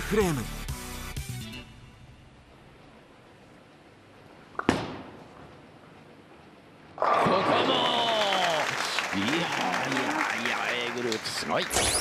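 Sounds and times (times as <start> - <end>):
audience applauding: 7.2 - 11.7.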